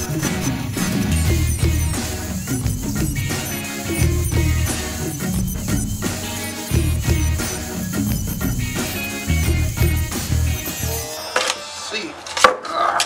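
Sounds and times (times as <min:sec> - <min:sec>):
background music with steady beat: 0:00.0 - 0:12.2.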